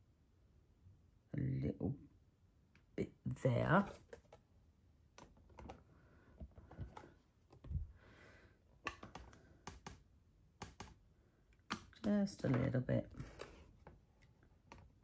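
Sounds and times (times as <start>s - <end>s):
plastic tools clicking and tapping: 8.8s - 15.0s.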